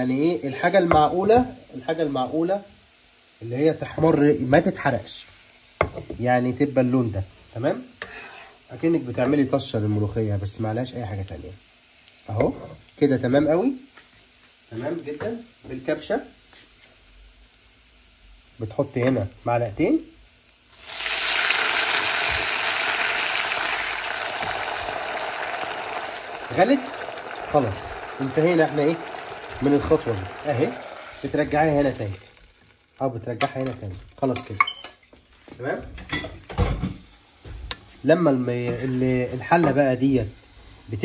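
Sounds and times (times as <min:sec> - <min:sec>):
garlic sizzling in hot oil: 0:00.0 - 0:41.0.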